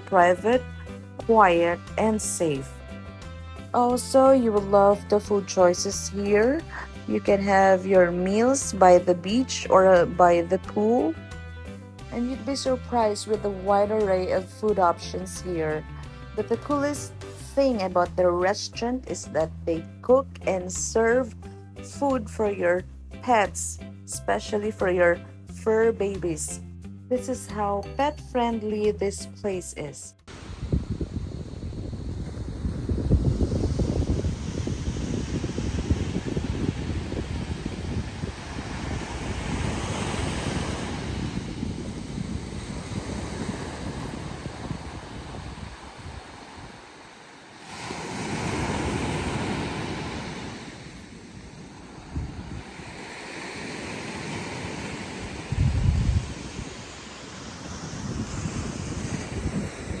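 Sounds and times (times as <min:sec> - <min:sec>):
wind buffeting microphone: 0:30.3 - 1:00.0
small waves breaking on beach: 0:34.2 - 1:00.0.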